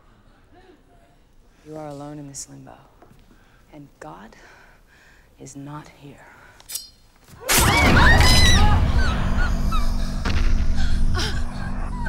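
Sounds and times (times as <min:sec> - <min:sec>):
shrill overlapping screams: 0:07.4 - 0:10.2
deep rumble: 0:07.9 - 0:12.0
low steady drone: 0:08.7 - 0:12.0.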